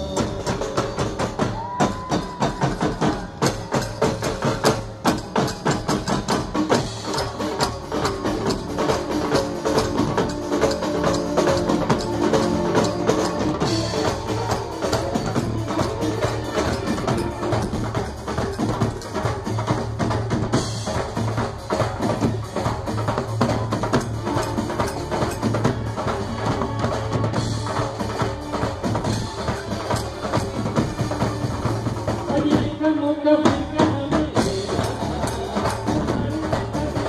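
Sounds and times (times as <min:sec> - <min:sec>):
snare drums: 0:00.0 - 0:32.9
dhol drumming: 0:00.0 - 0:37.0
drum kit: 0:00.0 - 0:37.0.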